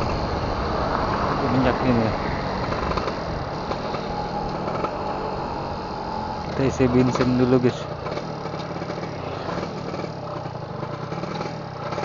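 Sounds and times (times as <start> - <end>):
road noise: 0.0 - 12.0
two-stroke motorcycle engine running: 0.0 - 12.0.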